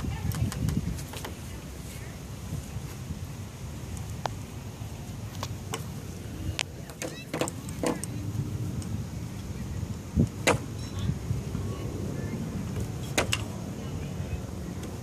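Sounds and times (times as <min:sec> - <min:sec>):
steady low rumble: 0:00.0 - 0:15.0
sharp clicks and knocks: 0:06.6 - 0:08.2.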